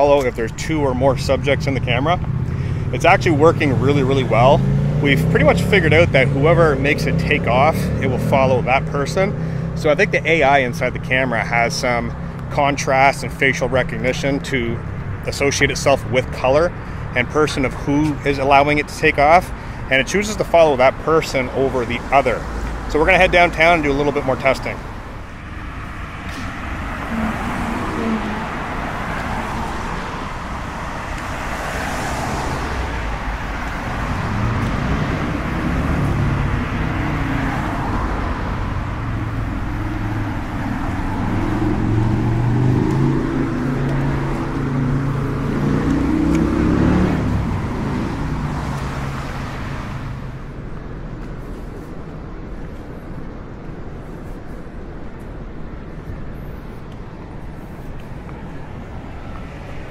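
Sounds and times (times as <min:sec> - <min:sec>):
heavy vehicle engine: 0:00.0 - 0:50.6
road traffic passing: 0:00.0 - 0:59.9.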